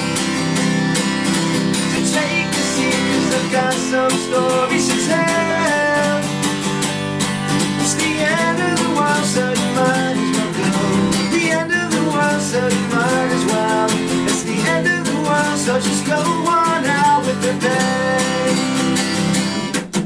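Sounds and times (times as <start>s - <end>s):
acoustic guitar strummed and picked: 0.0s - 20.0s
man singing: 1.7s - 6.6s, 7.7s - 19.2s.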